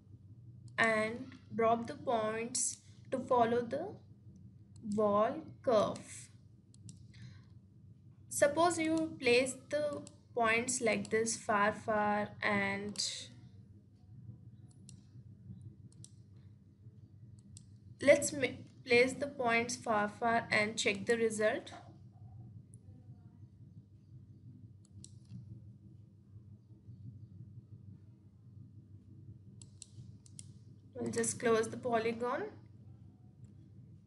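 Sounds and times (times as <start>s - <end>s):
low steady hum: 0.0s - 34.0s
computer mouse clicks: 5.9s - 7.5s, 8.8s - 9.2s, 9.9s - 10.2s, 14.6s - 15.2s, 15.9s - 16.4s, 17.4s - 17.8s, 24.8s - 25.5s, 29.6s - 31.4s.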